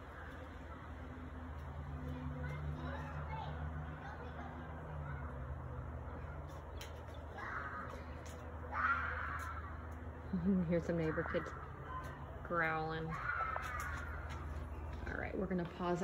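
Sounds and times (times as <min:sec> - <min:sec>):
children's harsh growling calls: 0:07.4 - 0:09.9, 0:13.0 - 0:14.7.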